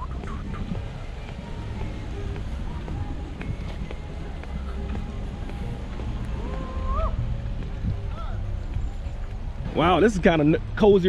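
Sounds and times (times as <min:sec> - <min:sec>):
birds chirping: 0:00.0 - 0:11.0
steady low rumble: 0:00.0 - 0:11.0.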